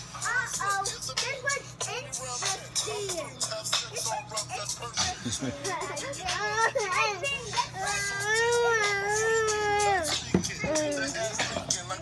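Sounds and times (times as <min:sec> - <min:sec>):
toddler babbling: 0:05.6 - 0:11.3.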